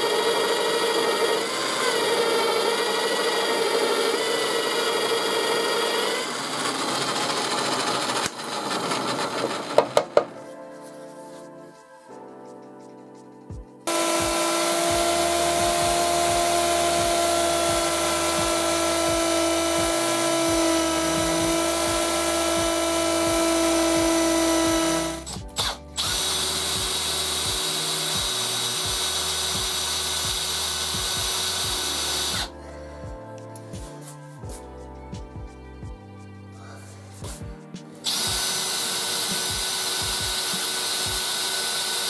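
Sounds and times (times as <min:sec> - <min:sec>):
power tool whining: 0:00.0 - 0:10.2, 0:13.9 - 0:32.5, 0:38.0 - 0:42.0.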